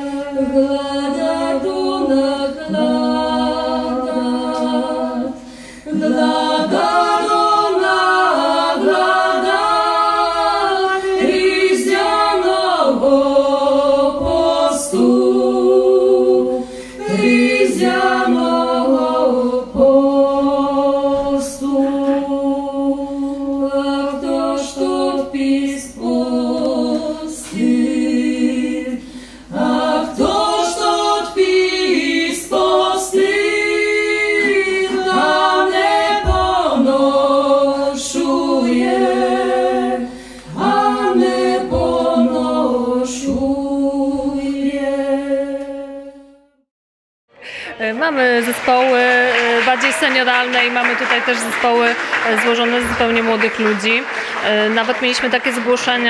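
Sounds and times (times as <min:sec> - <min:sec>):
people singing a cappella: 0:00.0 - 0:46.6.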